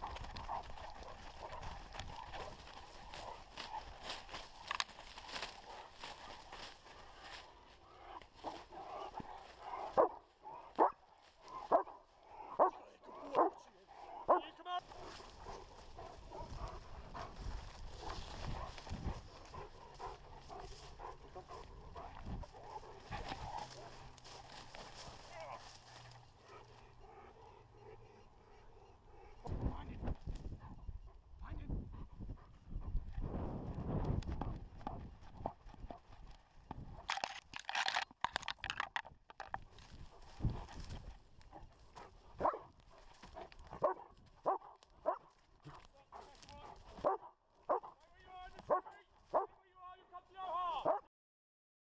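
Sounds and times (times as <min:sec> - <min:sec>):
rustling through grass: 0:00.0 - 0:10.3, 0:14.8 - 0:26.8, 0:39.4 - 0:47.1
dog panting: 0:00.0 - 0:25.2, 0:26.0 - 0:29.5, 0:31.8 - 0:33.2, 0:41.5 - 0:44.0
dog barking close up: 0:08.4 - 0:11.0, 0:11.6 - 0:13.6, 0:14.2 - 0:14.5, 0:42.4 - 0:42.7, 0:43.7 - 0:45.3, 0:47.0 - 0:48.0, 0:48.7 - 0:49.6, 0:50.8 - 0:51.1.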